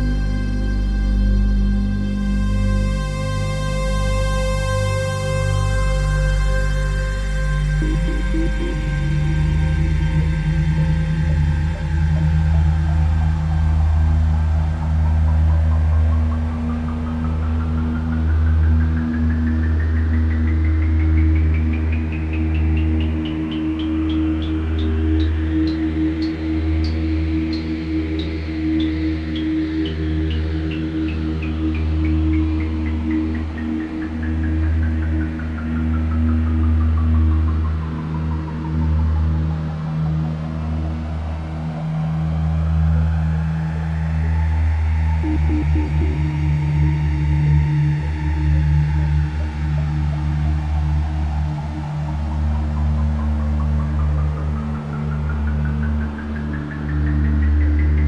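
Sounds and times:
ambient synthesizer music: 0.0s - 58.0s.

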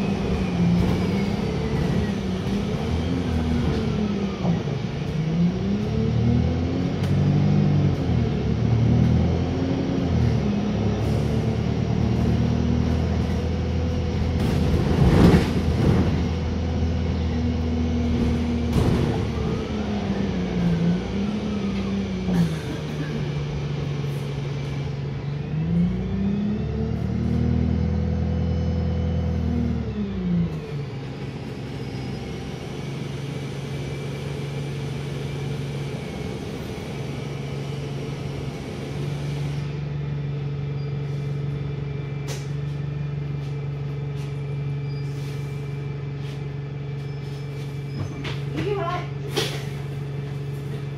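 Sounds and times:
bus diesel engine: 0.0s - 50.9s.

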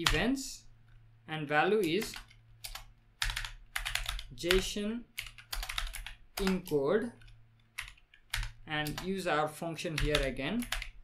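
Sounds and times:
typing on computer keyboard: 1.8s - 9.2s, 9.9s - 11.0s.

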